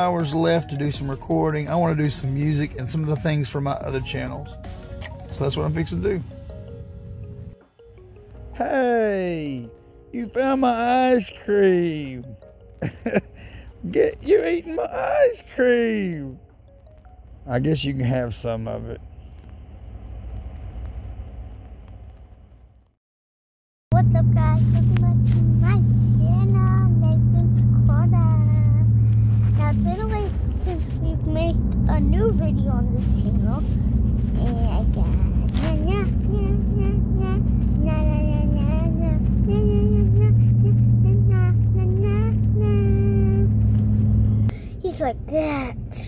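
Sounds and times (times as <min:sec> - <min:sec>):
car interior drone: 0:00.0 - 0:22.9, 0:24.0 - 0:46.0
low steady rumble: 0:00.0 - 0:22.9, 0:23.9 - 0:46.0
boy singing wordless notes: 0:24.0 - 0:29.0, 0:29.6 - 0:33.6, 0:34.4 - 0:43.6.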